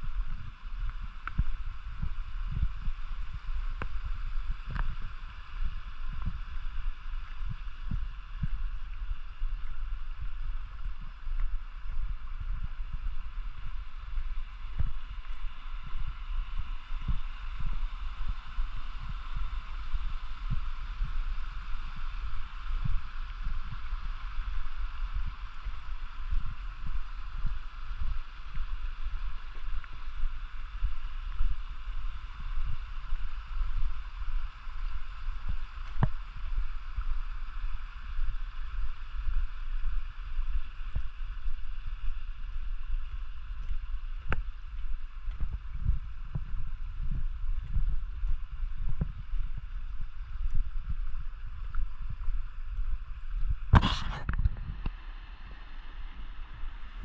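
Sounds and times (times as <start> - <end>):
mountain stream flowing: 0.0 - 57.0
wind rumble on microphone: 0.0 - 57.0
footsteps on stony path: 43.3 - 54.5.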